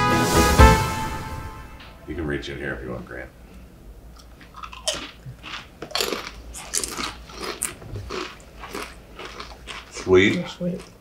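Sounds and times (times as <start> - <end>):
people crunching tortilla chips: 4.4 - 11.0.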